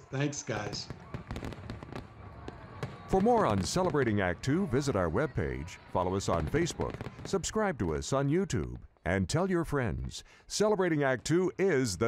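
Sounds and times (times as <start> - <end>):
fireworks crackling and popping: 0.4 - 8.8.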